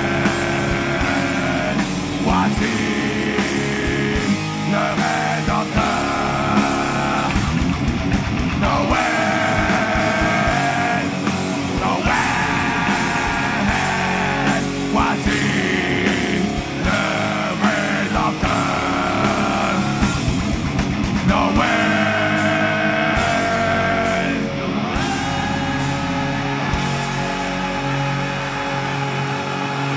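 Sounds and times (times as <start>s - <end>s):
people singing together: 0.0s - 7.6s, 8.6s - 20.4s, 21.2s - 29.9s
distorted electric guitars: 0.0s - 29.9s
drums: 0.0s - 29.9s.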